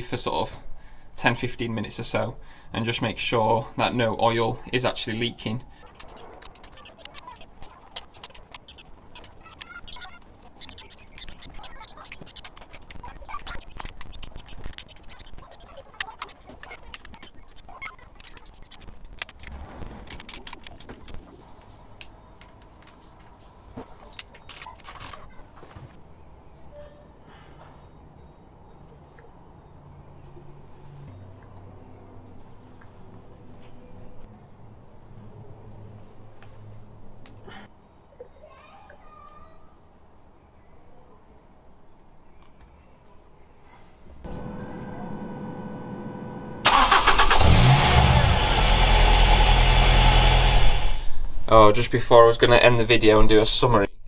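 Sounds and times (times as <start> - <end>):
metal tool handling: 24.1 - 25.2.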